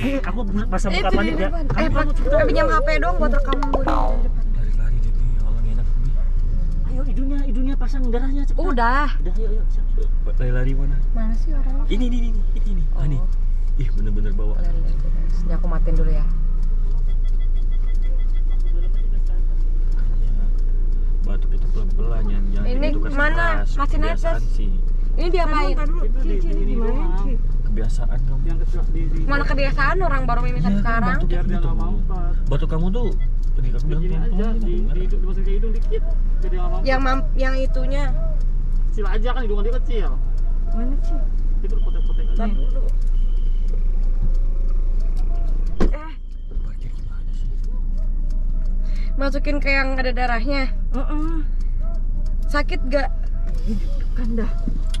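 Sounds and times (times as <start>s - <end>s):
rapid high electronic beeping: 0.0s - 4.6s, 16.7s - 19.6s, 41.7s - 44.0s
car cabin rumble: 27.3s - 55.0s.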